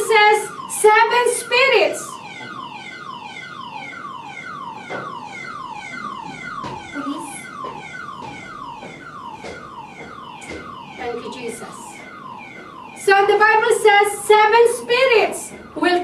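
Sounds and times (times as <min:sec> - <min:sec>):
car alarm whooping: 0:00.0 - 0:16.0.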